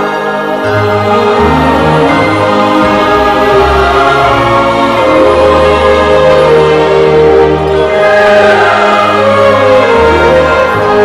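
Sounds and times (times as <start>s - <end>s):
choir singing sustained notes: 0.0s - 11.0s.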